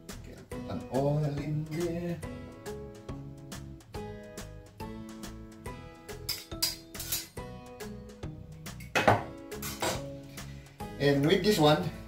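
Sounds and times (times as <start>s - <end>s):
whisk clinking and scraping bowl: 6.3s - 7.4s.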